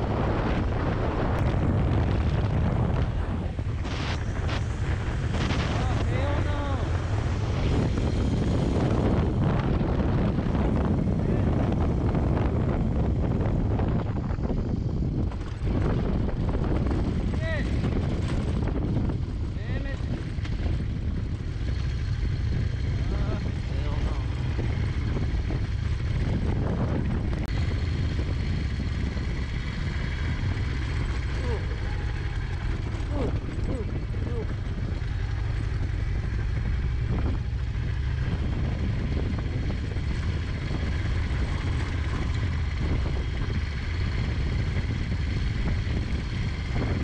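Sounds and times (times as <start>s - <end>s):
motorcycle engine cruising: 0.0s - 47.0s
wind rushing over microphone: 0.0s - 47.0s.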